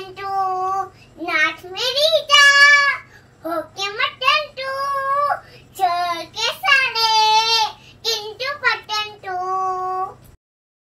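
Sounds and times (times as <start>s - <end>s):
young girl singing: 0.0s - 10.4s.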